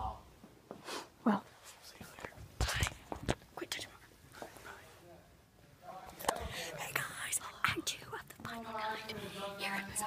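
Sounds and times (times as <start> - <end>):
people whispering: 1.2 - 5.1, 6.0 - 10.0.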